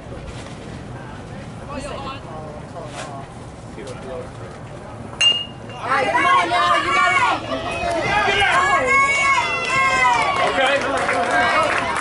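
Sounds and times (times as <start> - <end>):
voices shouting calls of encouragement: 5.8 - 10.6.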